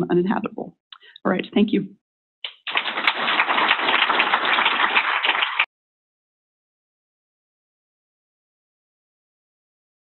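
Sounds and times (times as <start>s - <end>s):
audience applauding: 2.5s - 5.7s.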